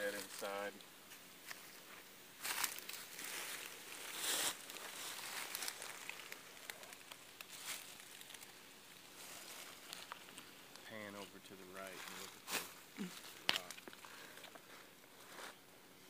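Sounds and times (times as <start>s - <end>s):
dry leaves rustling and crunching: 2.4s - 10.8s, 11.8s - 15.5s.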